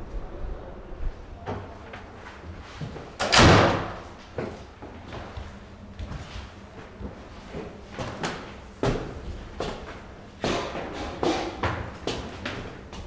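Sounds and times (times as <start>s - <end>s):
door slamming shut: 3.2s - 4.0s.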